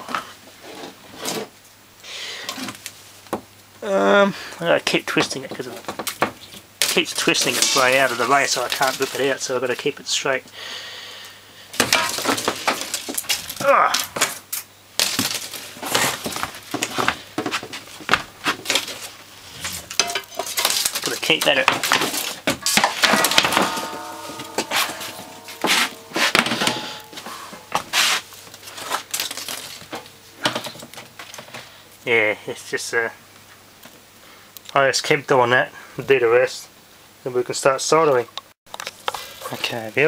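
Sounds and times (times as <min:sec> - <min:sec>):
copper wire scraping and crackling: 0:05.3 - 0:10.0, 0:11.8 - 0:31.4.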